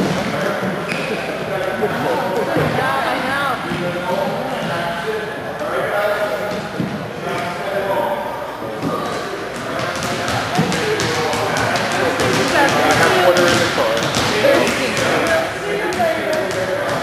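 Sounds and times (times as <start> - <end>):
children chattering: 0.0 - 6.4, 11.9 - 17.0
basketballs bouncing on wooden floor: 8.8 - 17.0.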